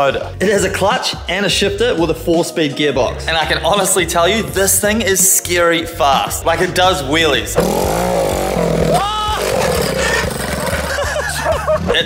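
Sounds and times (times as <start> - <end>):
go-kart engine revving: 7.6 - 11.2.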